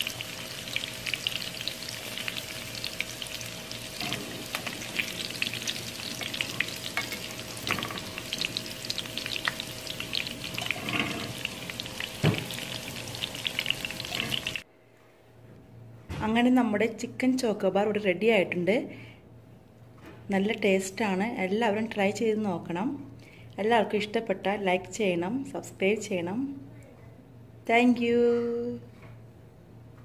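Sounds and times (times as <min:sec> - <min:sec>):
chicken frying in hot oil: 0:00.0 - 0:14.6.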